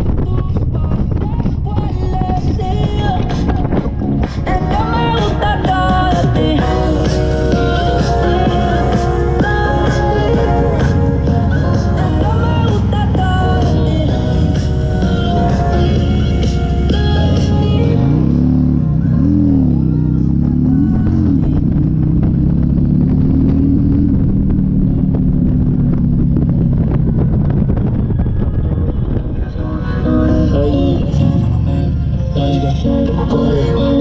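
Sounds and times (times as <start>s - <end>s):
song from motorcycle radio: 0.0s - 23.3s, 26.8s - 34.0s
motorcycle engine: 0.0s - 34.0s.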